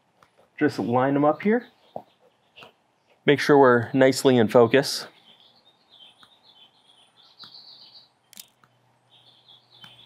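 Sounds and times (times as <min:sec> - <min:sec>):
birds chirping: 0:00.6 - 0:10.0
sharp click: 0:08.3 - 0:08.7.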